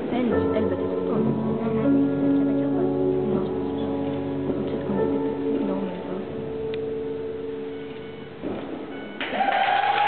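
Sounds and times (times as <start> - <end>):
audience applause: 9.2 - 10.0
audience cheering: 9.2 - 10.0.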